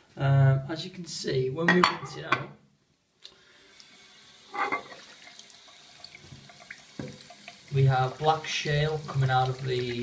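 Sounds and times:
tap water running: 3.5s - 10.0s.

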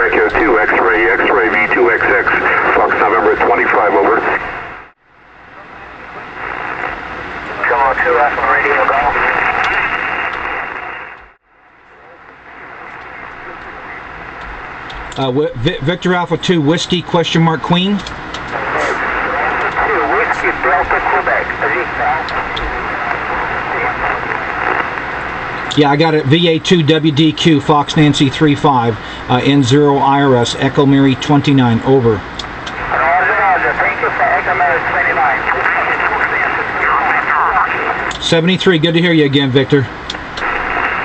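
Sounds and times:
faint voice over radio: 0.0s - 4.4s, 5.5s - 10.6s, 11.9s - 14.1s, 18.5s - 24.9s, 32.9s - 38.1s
radio static hiss: 0.0s - 41.0s.

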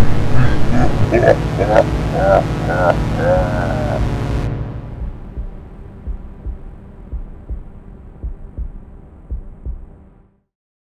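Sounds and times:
heartbeat double thumps: 0.0s - 10.1s
steady low hum: 0.0s - 10.4s.

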